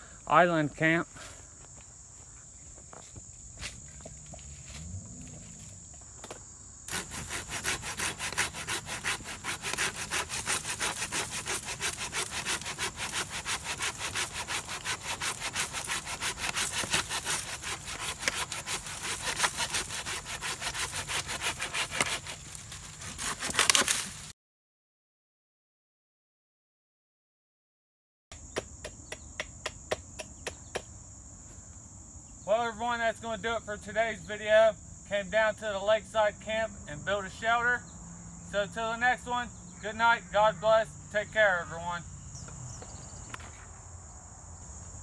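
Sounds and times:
pruning saw cutting log: 6.2s - 24.3s.

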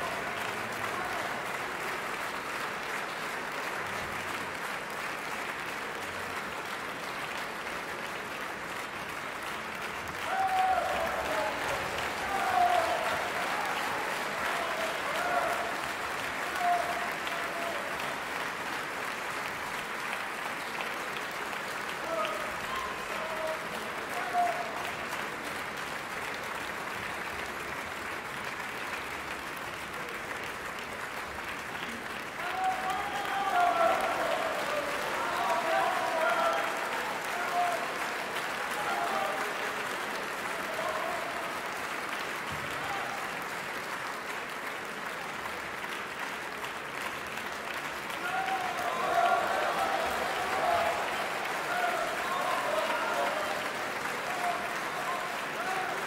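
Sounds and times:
audience applauding: 0.0s - 56.0s
audience shouting: 10.2s - 17.9s, 32.4s - 39.6s, 48.2s - 56.0s.

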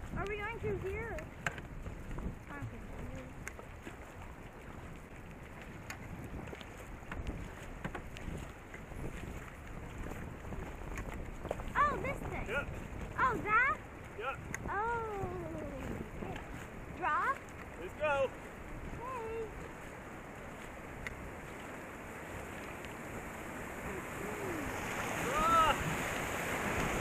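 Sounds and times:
river water rushing and splashing: 0.0s - 27.0s
wind buffeting microphone: 0.0s - 27.0s
person shouting: 24.2s - 25.9s.

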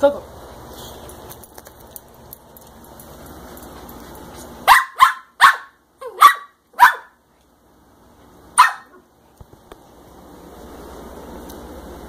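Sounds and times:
small dog barking: 4.6s - 7.2s, 8.6s - 9.0s.

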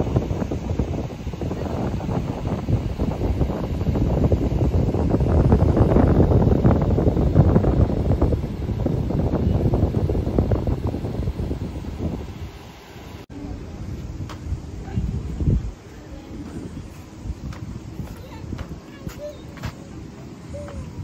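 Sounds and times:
wind buffeting microphone: 0.0s - 12.7s, 13.3s - 21.0s.

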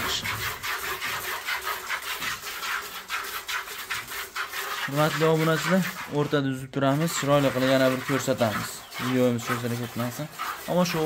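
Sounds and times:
milk squirting into a bucket: 0.0s - 11.0s.

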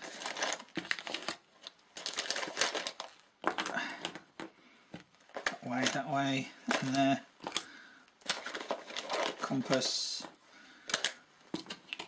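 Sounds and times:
plastic bag crinkling: 0.0s - 4.5s, 5.2s - 12.0s.

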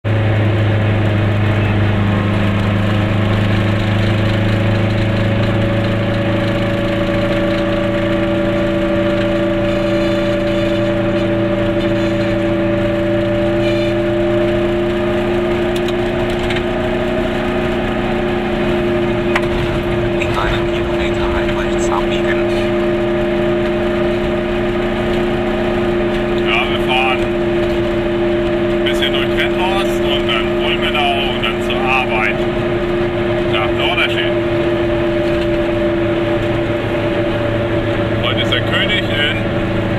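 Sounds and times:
two-stroke car engine running: 0.0s - 39.9s.

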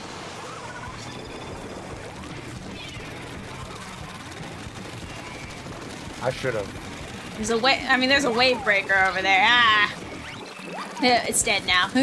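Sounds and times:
game music: 0.4s - 12.0s.

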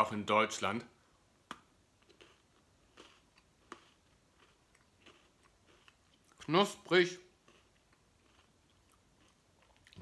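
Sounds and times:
chewing crunches: 1.5s - 6.6s, 7.3s - 10.0s.

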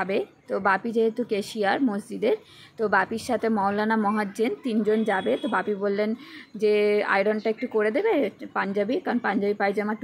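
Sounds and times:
woman talking: 0.0s - 10.0s.

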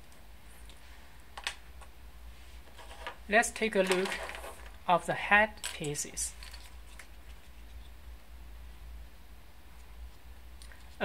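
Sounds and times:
low steady hum: 0.0s - 11.0s
wooden pieces clicking on desk: 2.8s - 4.7s.

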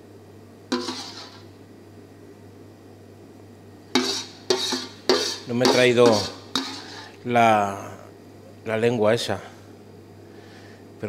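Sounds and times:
steady low hum: 0.0s - 11.0s
utensil clattering against cookware: 4.0s - 7.0s.

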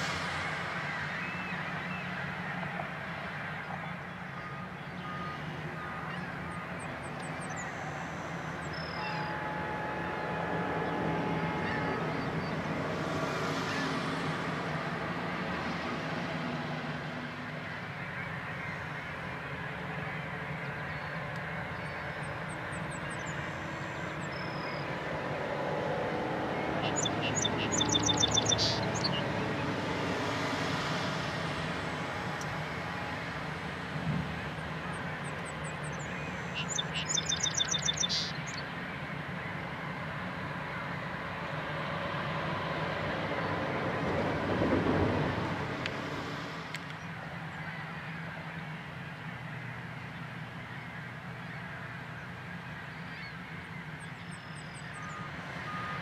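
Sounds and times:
heavy diesel engines droning: 0.0s - 56.0s.

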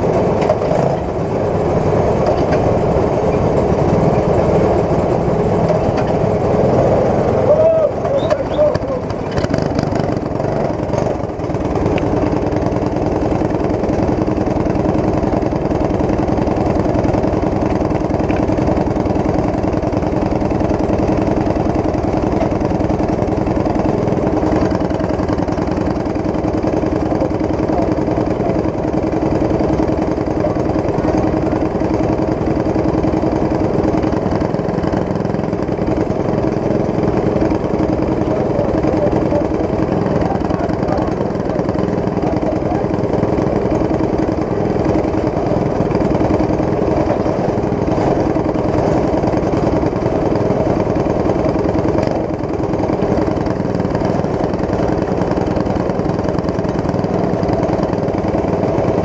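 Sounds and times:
kart engine idling: 0.0s - 59.0s.

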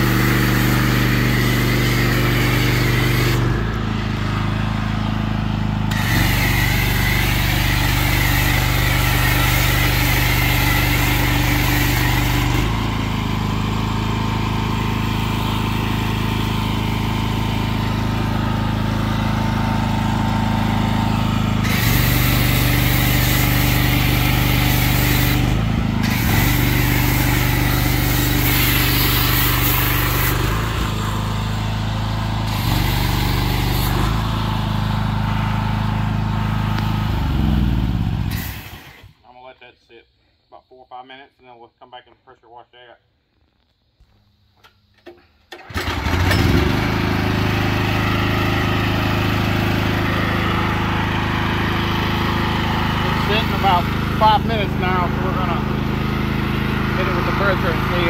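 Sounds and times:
pressure washer engine running: 0.0s - 39.2s, 45.5s - 58.0s.

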